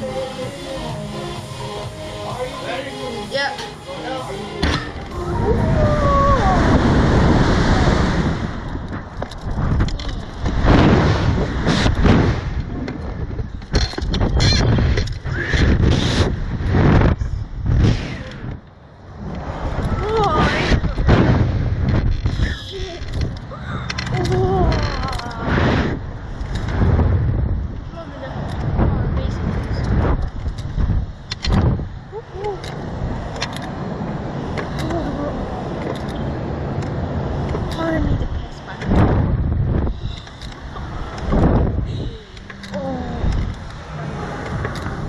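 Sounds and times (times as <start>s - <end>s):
wind rushing over microphone: 4.6s - 45.0s
faint voice sounds: 41.9s - 45.0s.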